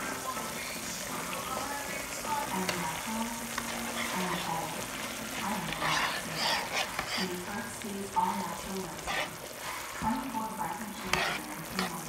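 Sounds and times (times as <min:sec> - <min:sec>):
broth bubbling and sizzling: 0:00.0 - 0:12.0
faint tv voice: 0:05.4 - 0:12.0.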